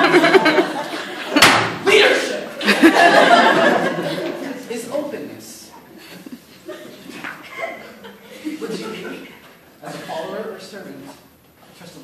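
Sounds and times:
voices in a large room: 0:00.0 - 0:12.0
sharp slam: 0:01.4 - 0:01.9.

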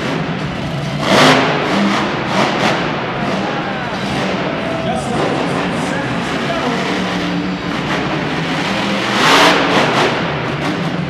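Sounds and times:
monster truck engine revving: 0:00.0 - 0:11.0.

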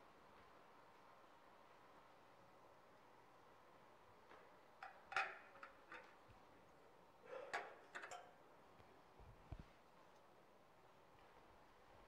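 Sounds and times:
clicks and taps of dishes: 0:04.8 - 0:06.1, 0:07.5 - 0:08.3.

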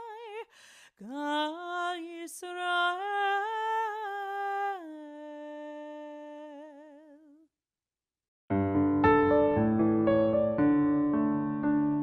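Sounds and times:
woman singing unaccompanied: 0:00.0 - 0:07.5.

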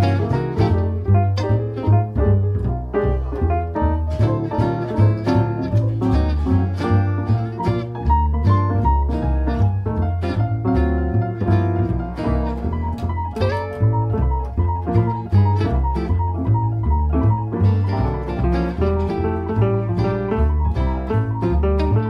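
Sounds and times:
piano: 0:00.0 - 0:22.0
walking upright bass: 0:00.0 - 0:22.0.

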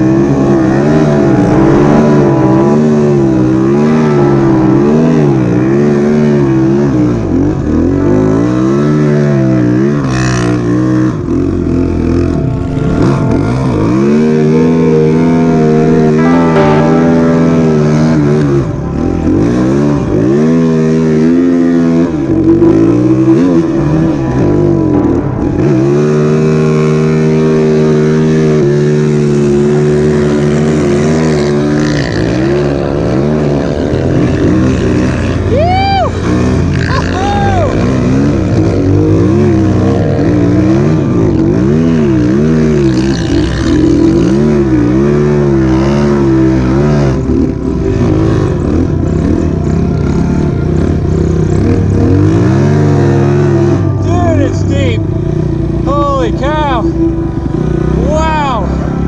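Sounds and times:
higher engine note: 0:00.0 - 0:59.0
motorcycle engine revving: 0:00.0 - 0:59.0.

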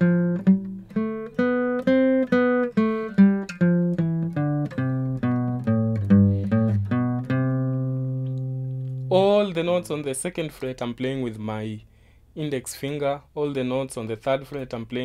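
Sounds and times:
acoustic guitar picking scale: 0:00.0 - 0:10.5.

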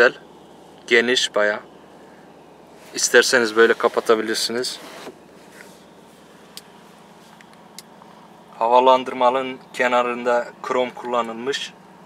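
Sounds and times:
car cabin background noise: 0:00.0 - 0:12.0.

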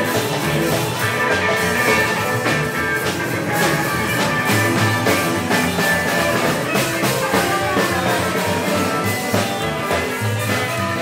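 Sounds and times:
electric guitar: 0:00.0 - 0:11.0
steady drum beat: 0:00.0 - 0:11.0.

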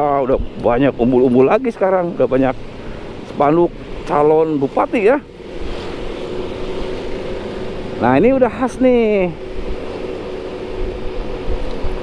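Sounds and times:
road and wind noise: 0:00.0 - 0:12.0
scooter engine hum: 0:00.0 - 0:12.0.

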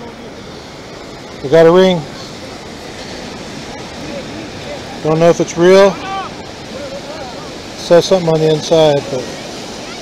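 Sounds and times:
ocean waves breaking: 0:00.0 - 0:10.0.

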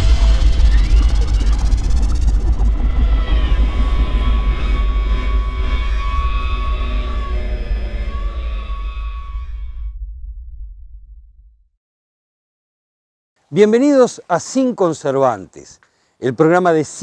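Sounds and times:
held high tones: 0:00.0 - 0:09.6
noisy sound-effect texture: 0:00.0 - 0:11.4
deep rumble: 0:00.0 - 0:11.8.

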